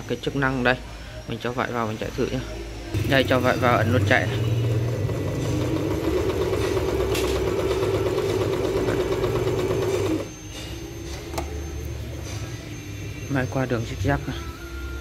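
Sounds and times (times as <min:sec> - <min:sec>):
sewing machine stitching: 0:03.0 - 0:10.3.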